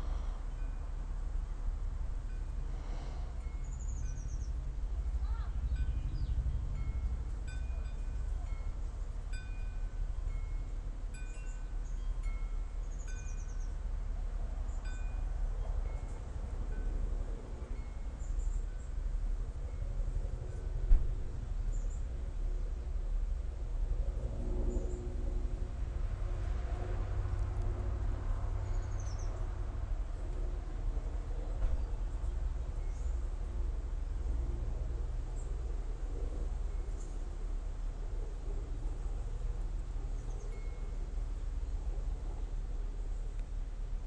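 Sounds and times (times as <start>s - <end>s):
steady low rumble: 0.0s - 13.0s, 13.6s - 44.0s
wind chimes tinkling: 5.6s - 13.6s.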